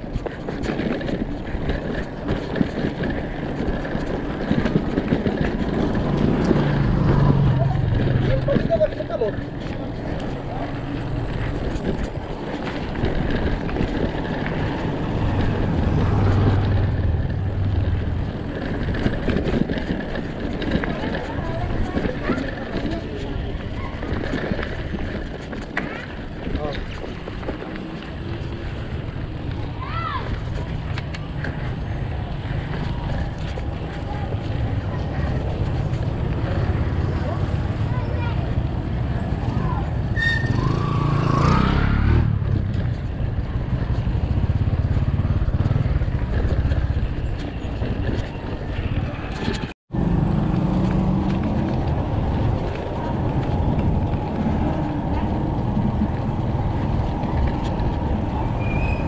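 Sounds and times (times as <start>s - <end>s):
bike clicks and knocks: 0.0s - 37.4s
bike tyres on gravel: 0.0s - 49.7s, 50.6s - 59.0s
wind on microphone: 50.5s - 59.0s.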